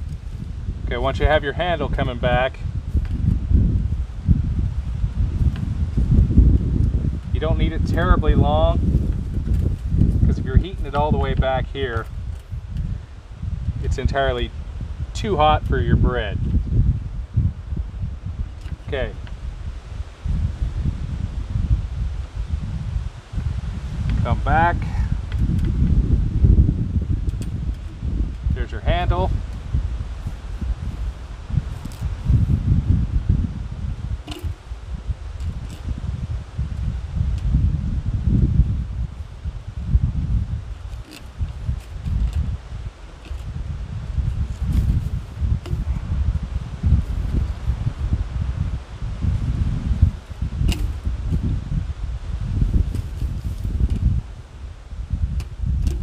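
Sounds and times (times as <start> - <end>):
wind buffeting microphone: 0.0 - 56.0
faint ticks of wire and pliers: 34.2 - 34.6
wire and pliers clicking: 34.2 - 34.6, 40.9 - 42.4, 50.7 - 51.0.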